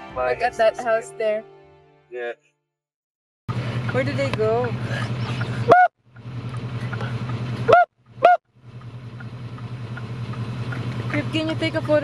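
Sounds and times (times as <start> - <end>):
vehicle engine idling: 3.5 - 12.0
honk-like call: 5.3 - 5.9, 7.6 - 8.4.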